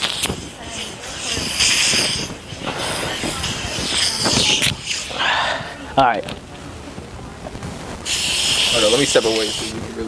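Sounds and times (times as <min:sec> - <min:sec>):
aerosol can spraying: 0:00.0 - 0:05.1, 0:08.0 - 0:09.8.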